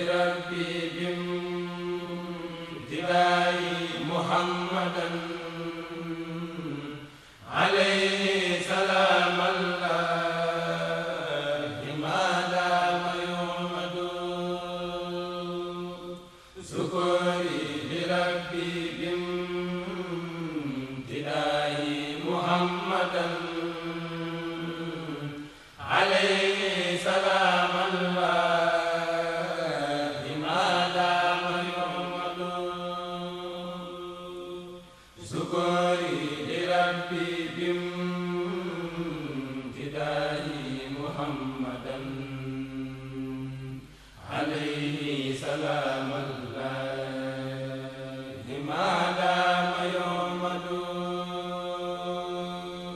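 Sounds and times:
men chanting unaccompanied: 0:00.0 - 0:52.9.

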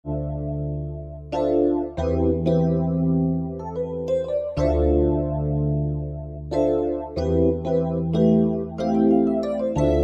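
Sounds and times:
electric piano chords: 0:00.0 - 0:10.0.

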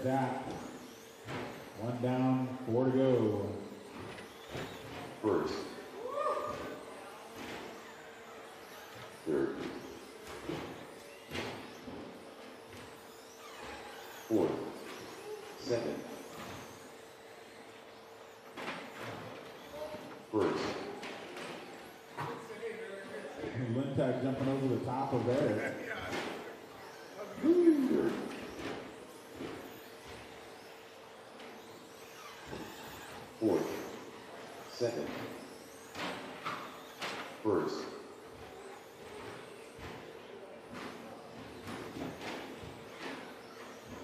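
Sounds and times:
rc truck motor whine: 0:00.0 - 0:44.0
man hooting ooh: 0:27.4 - 0:28.0.

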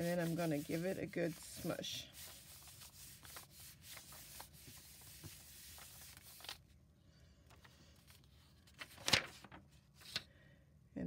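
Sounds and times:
hands rubbing on paper: 0:00.0 - 0:06.6.

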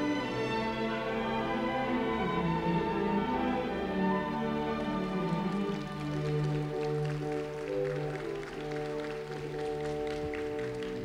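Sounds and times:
orchestra playing slow music: 0:00.0 - 0:11.0.

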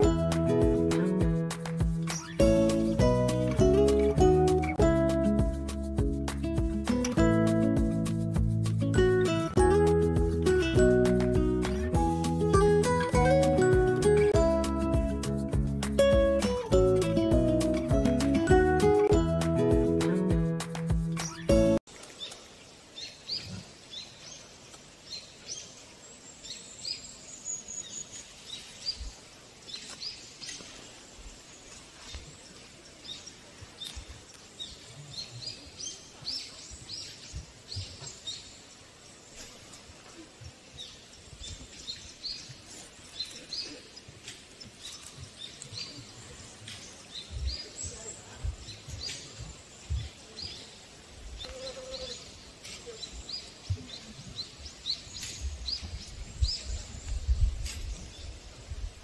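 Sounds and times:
small birds chirping: 0:00.0 - 0:20.1, 0:20.8 - 0:59.0.

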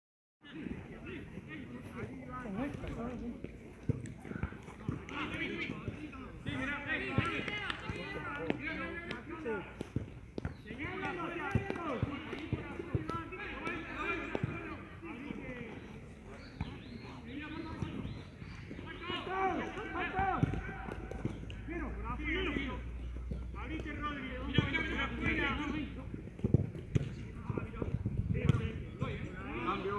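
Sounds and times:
people talking indistinctly: 0:00.4 - 0:29.9
football being kicked: 0:26.4 - 0:28.8.

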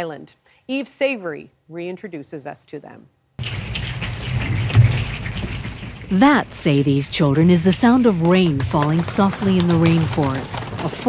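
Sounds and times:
children patting rain sounds: 0:03.4 - 0:11.0.

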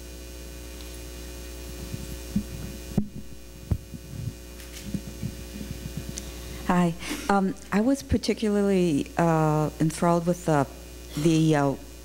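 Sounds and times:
electrical mains hum: 0:00.0 - 0:12.0
short low thumps: 0:01.8 - 0:06.2.

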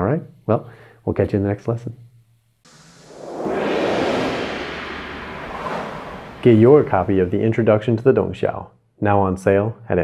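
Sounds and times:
breathy whoosh: 0:02.7 - 0:07.1.

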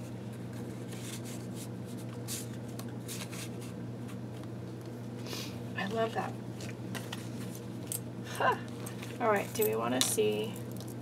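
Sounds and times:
paper rustling: 0:00.4 - 0:03.8.

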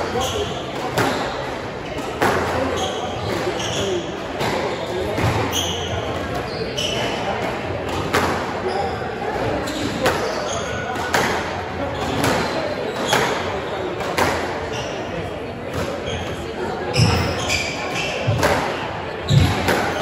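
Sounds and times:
shoes squeaking on hardwood floor: 0:02.7 - 0:07.3, 0:16.0 - 0:18.5.

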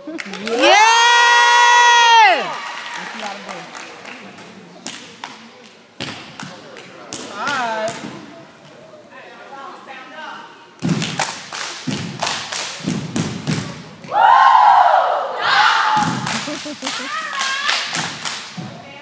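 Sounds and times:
loud shout: 0:00.5 - 0:03.0, 0:14.1 - 0:16.4, 0:17.0 - 0:17.8.

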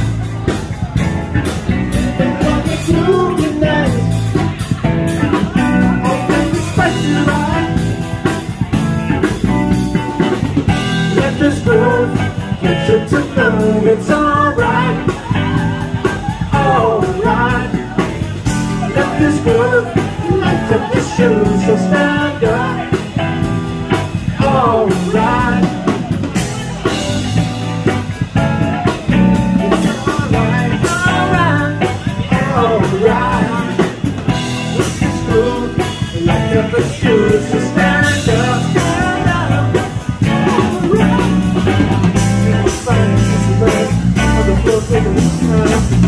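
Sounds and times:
drum kit: 0:00.0 - 0:46.0
electric guitars: 0:00.0 - 0:46.0.

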